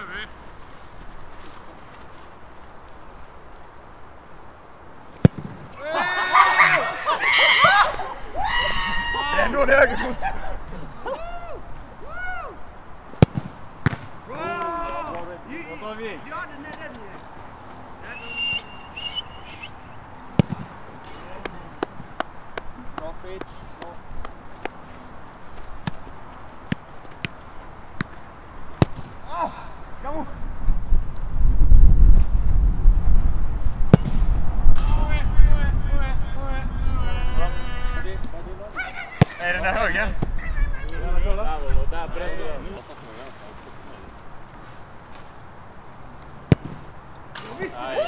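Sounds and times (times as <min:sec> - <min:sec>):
football kicks on artificial turf: 0:13.2 - 0:14.1
wind rumble on microphone: 0:30.0 - 0:38.6, 0:39.6 - 0:42.6.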